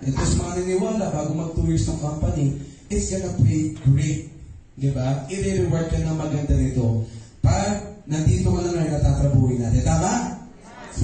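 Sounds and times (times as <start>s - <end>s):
man talking into microphone: 0.0s - 11.0s.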